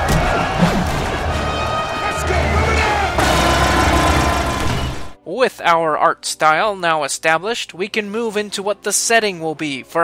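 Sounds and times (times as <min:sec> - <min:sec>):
battle sound effects: 0:00.0 - 0:05.2
dramatic soundtrack music: 0:00.0 - 0:05.2.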